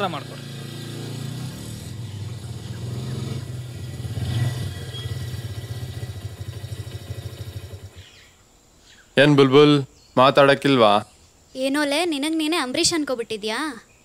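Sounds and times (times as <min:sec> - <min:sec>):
motorcycle engine running: 0:00.0 - 0:08.2.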